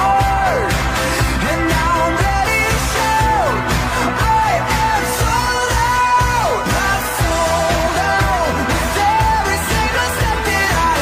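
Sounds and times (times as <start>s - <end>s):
drum and bass beat: 0.0s - 11.0s
pop song vocal singing: 0.0s - 11.0s.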